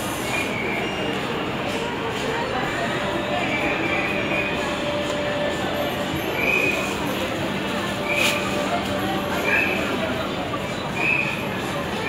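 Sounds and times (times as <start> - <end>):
busy public space din: 0.0 - 12.0
faint indistinct voices: 0.0 - 12.0.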